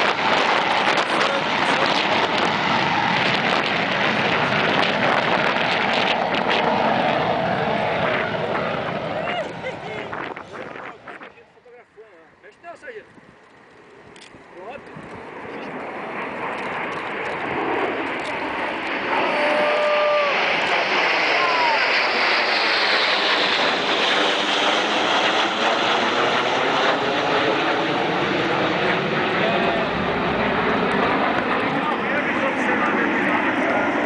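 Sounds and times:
jet roar overhead: 0:00.0 - 0:34.0.

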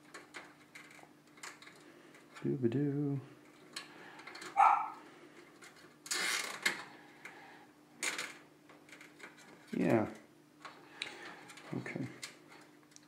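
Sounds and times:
cables rustling and scraping: 0:00.0 - 0:02.6, 0:03.4 - 0:07.4, 0:08.0 - 0:13.0
faint steady hum: 0:00.0 - 0:13.0.

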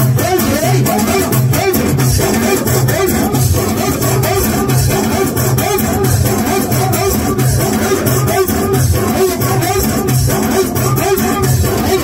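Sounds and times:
electronic keyboard popular music: 0:00.0 - 0:12.0.

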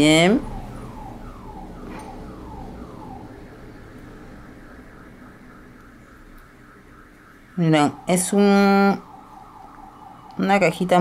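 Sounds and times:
faint electronic siren: 0:00.0 - 0:11.0.

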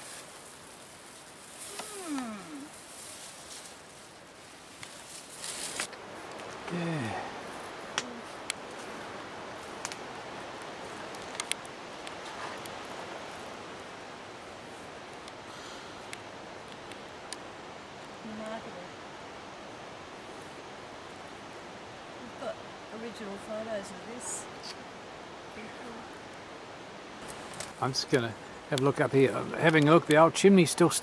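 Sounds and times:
low voice murmuring: 0:01.7 - 0:02.8, 0:06.7 - 0:07.4.

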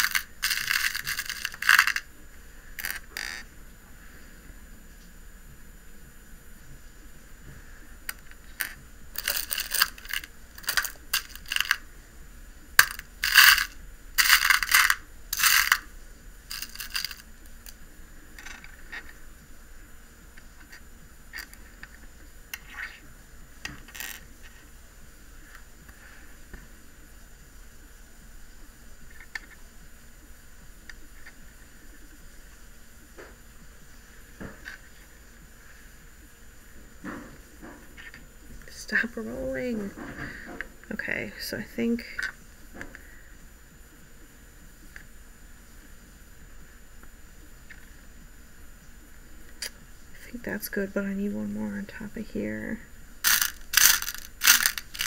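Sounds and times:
glass beads clicking and rattling: 0:00.0 - 0:02.0, 0:09.2 - 0:11.8, 0:12.8 - 0:15.8, 0:16.5 - 0:17.2, 0:53.2 - 0:55.0.

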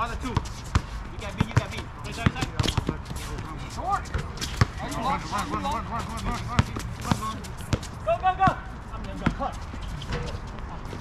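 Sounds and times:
basketball bouncing: 0:00.3 - 0:03.1, 0:05.6 - 0:08.0.

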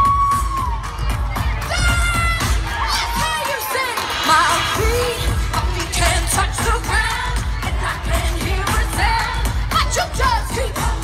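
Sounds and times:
heavy bass beat: 0:00.0 - 0:11.0
female vocal group singing: 0:01.4 - 0:11.0.

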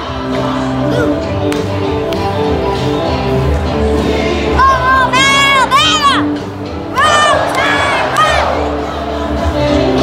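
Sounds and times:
song over stadium speakers: 0:00.0 - 0:10.0
boy shouting: 0:04.6 - 0:06.3
stadium crowd cheering: 0:06.8 - 0:09.6.

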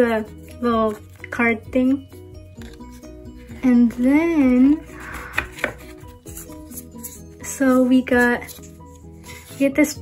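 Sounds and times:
faint background music: 0:00.0 - 0:10.0
photo cards rustling: 0:02.4 - 0:10.0
sharp taps of cards: 0:05.3 - 0:05.8.

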